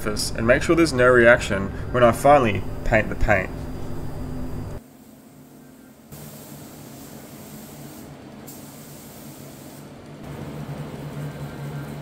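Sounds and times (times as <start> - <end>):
spray gun hissing: 6.1 - 10.0.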